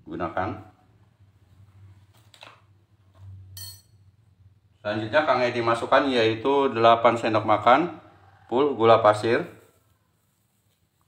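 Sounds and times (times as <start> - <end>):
metal spoon and bowls clinking: 3.5 - 4.2.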